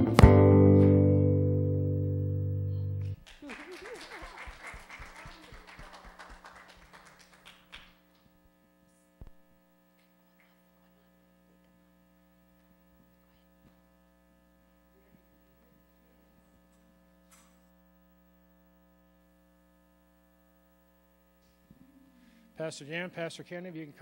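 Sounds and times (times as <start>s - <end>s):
faint mains hum: 0.7s - 24.0s
audience clapping: 3.0s - 8.4s.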